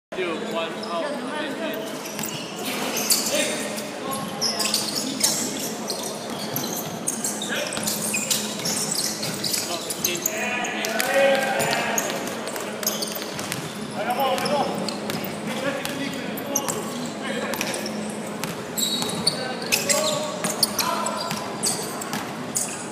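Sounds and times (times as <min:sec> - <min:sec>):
sneakers squeaking: 0:00.4 - 0:22.9.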